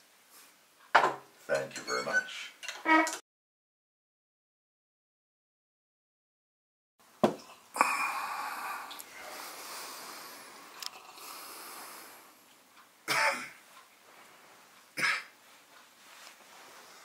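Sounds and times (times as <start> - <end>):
faint steady hiss: 0.0 - 2.8, 7.0 - 17.0
person coughing: 13.1 - 13.6, 15.0 - 15.3.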